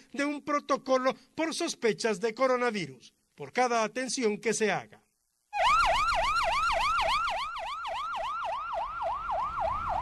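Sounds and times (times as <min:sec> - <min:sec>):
ambulance siren yelping: 0:05.6 - 0:10.0.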